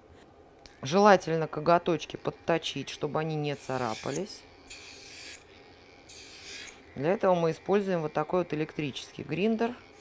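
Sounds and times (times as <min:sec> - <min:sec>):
electric nail grinder raspy hiss: 0:02.4 - 0:10.0.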